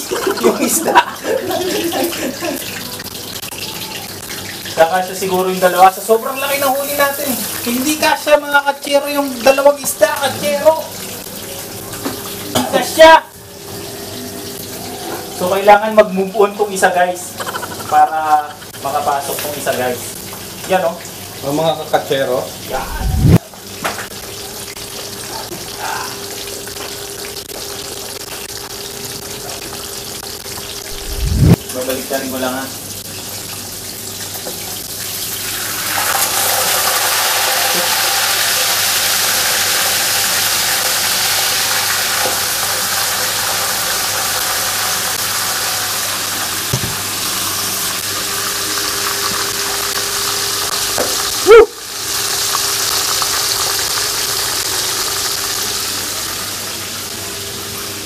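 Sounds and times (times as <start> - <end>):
fish frying in oil sizzling: 0.0 - 58.0.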